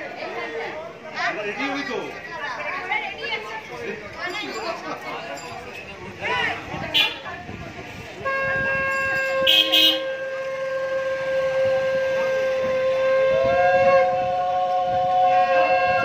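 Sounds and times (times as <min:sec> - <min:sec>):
conch shells blown: 0:08.2 - 0:16.0.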